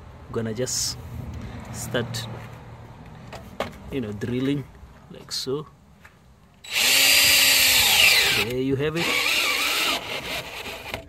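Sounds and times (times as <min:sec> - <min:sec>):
cordless drill boring into plastic: 0:06.7 - 0:11.0.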